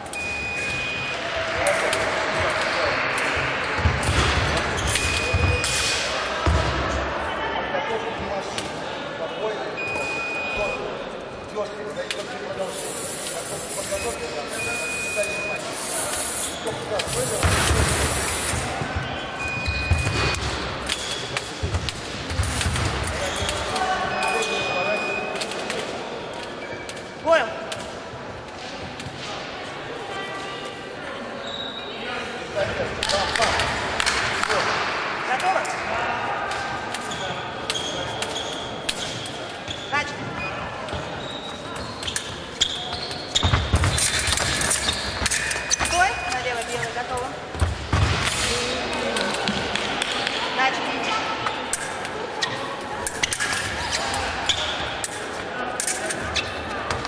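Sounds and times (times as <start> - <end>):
indistinct voices: 12.5 - 18.7.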